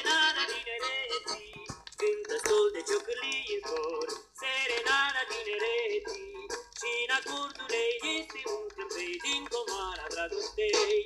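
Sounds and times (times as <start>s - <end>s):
instrumental accompaniment: 0.0s - 11.0s
man singing with vibrato: 0.0s - 11.0s.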